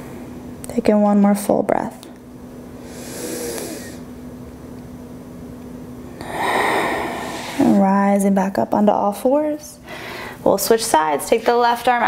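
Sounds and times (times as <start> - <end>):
person breathing deeply: 2.8 - 4.1, 6.1 - 7.8, 9.8 - 10.4.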